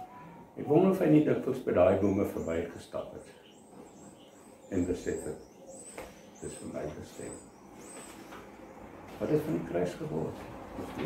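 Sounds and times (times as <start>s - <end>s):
man speaking softly: 6.4s - 7.4s, 9.2s - 10.5s.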